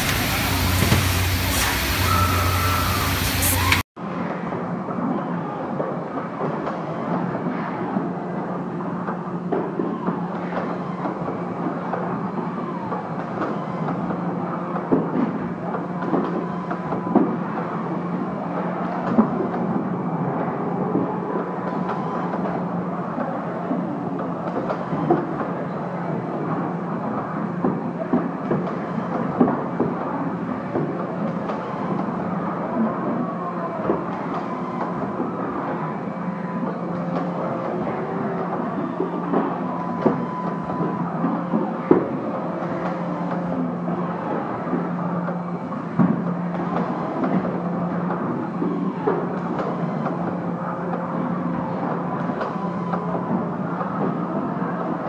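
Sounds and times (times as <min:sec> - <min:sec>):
thin high tone: 0:00.0 - 0:03.8
machinery hum: 0:00.0 - 0:03.9, 0:07.2 - 0:55.0.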